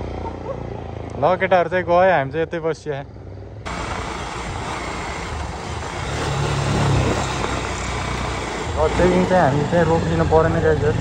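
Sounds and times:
motorcycle engine running: 0.0s - 11.0s
wind and road noise: 0.0s - 11.0s.

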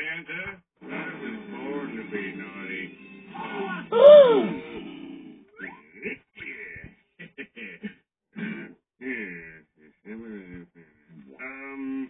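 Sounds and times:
cartoon character crying out: 3.9s - 4.6s.

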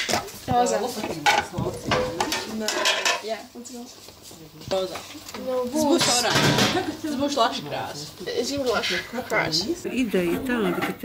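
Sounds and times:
voices talking: 0.3s - 11.0s.

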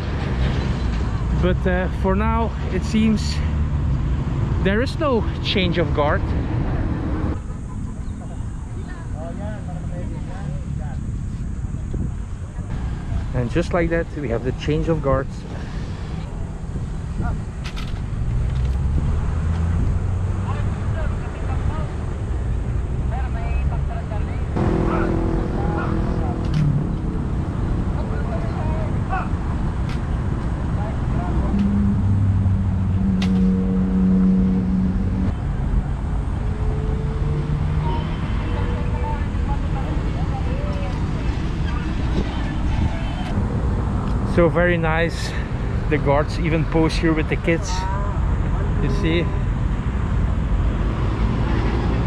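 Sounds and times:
city traffic rumble: 0.0s - 52.0s
droning tone: 31.4s - 35.4s.

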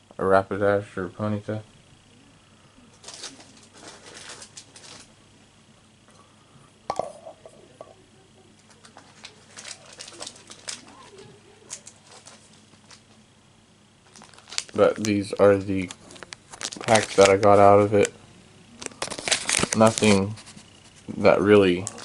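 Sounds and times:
packaging clicks and crinkles: 2.9s - 5.1s, 8.6s - 13.2s, 14.0s - 18.2s, 18.8s - 21.0s, 21.6s - 22.0s.

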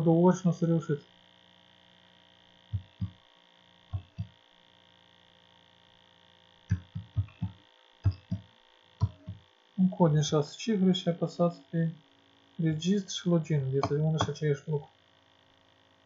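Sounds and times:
steady electrical hum: 0.0s - 16.0s.

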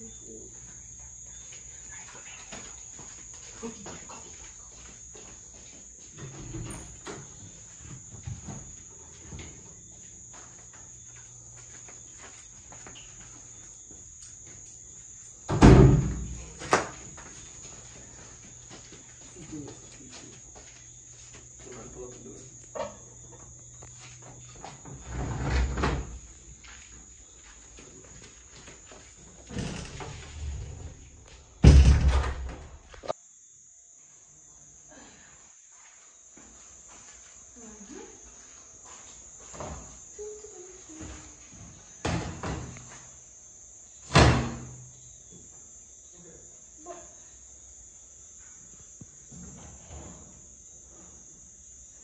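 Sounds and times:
high insect chirring: 0.0s - 27.6s, 42.6s - 49.7s
loud thump: 31.6s - 32.6s.

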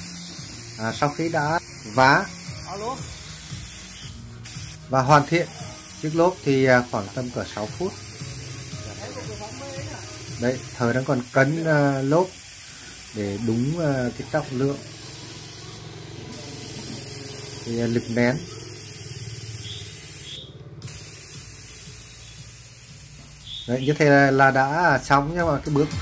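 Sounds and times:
compressed air hissing into tyre: 0.0s - 25.0s.

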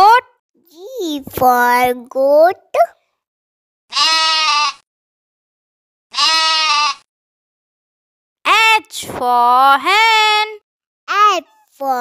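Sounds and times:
goat bleating: 3.9s - 4.8s, 6.1s - 7.1s.

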